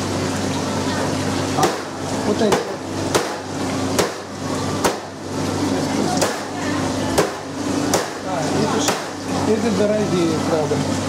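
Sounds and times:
equipment hum and hiss: 0.0 - 11.0.

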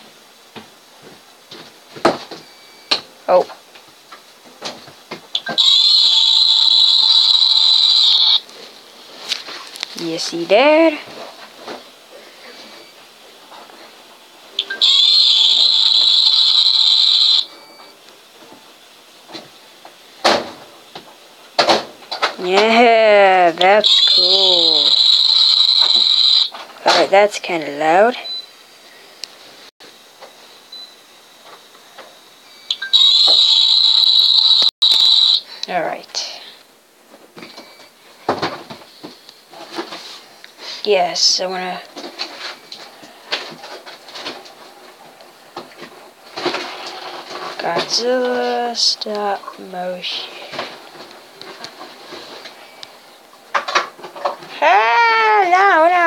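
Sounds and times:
shrill high-pitched tone: 5.4 - 8.4, 22.4 - 26.4.

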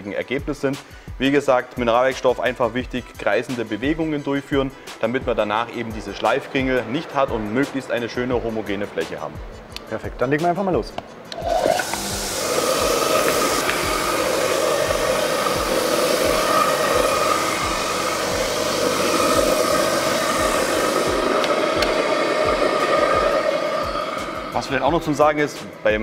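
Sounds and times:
dust extraction through hose: 11.3 - 26.0
orbital sander sanding panel: 11.5 - 25.6.

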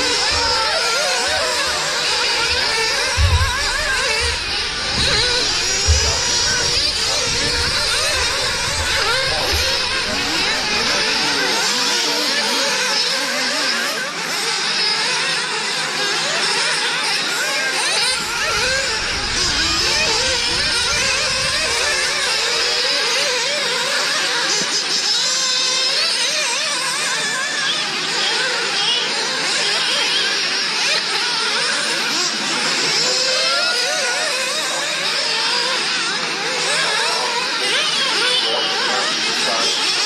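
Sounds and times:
rc car engines whining: 0.0 - 40.0
low rumble: 1.6 - 11.5.

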